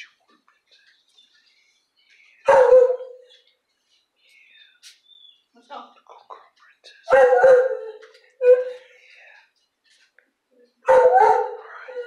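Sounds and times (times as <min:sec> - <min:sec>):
dog barking loudly: 0:02.5 - 0:03.3, 0:07.1 - 0:08.7, 0:10.8 - 0:11.7.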